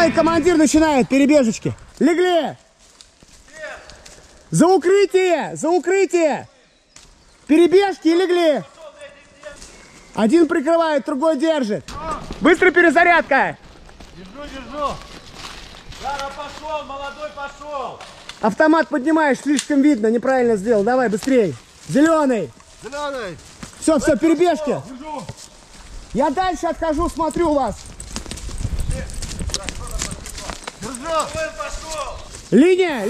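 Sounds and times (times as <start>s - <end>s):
man talking: 0.0s - 2.6s, 16.0s - 25.3s, 29.8s - 33.0s
footsteps on forest floor: 0.0s - 4.7s, 8.6s - 10.3s, 13.4s - 18.6s, 21.0s - 33.0s
twigs cracking underfoot: 1.3s - 4.5s, 6.9s - 7.6s, 13.6s - 17.2s, 17.9s - 18.6s, 21.0s - 23.9s, 27.8s - 32.6s
man calling out: 32.6s - 33.0s.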